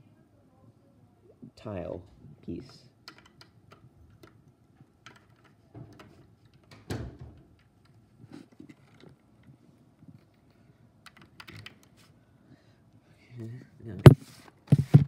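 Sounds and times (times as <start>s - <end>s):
plastic building bricks clicking: 2.6s - 8.0s, 10.2s - 11.9s.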